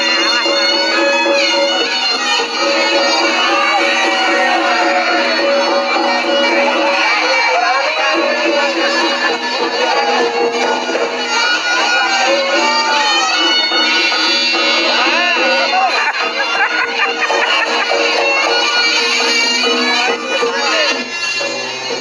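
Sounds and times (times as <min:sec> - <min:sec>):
crowd talking: 0:00.0 - 0:22.0
reedy shawm melody: 0:00.0 - 0:22.0.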